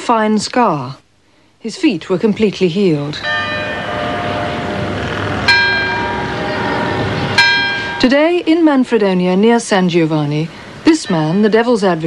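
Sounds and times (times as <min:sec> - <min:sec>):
church bell tolling: 0:03.2 - 0:08.2.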